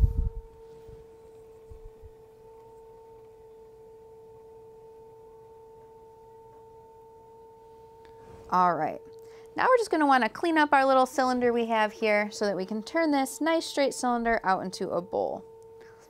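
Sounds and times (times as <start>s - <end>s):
pottery wheel whine: 0.0s - 16.0s.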